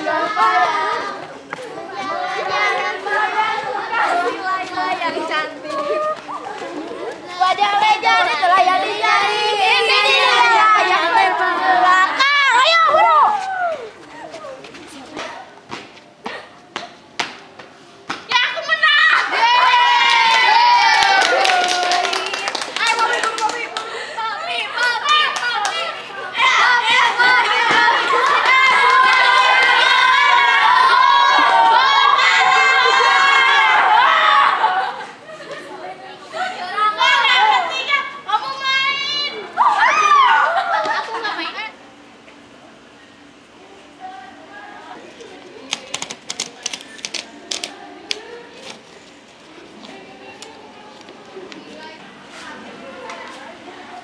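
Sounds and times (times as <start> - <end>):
girls calling out: 0.0 - 15.0, 36.3 - 41.6.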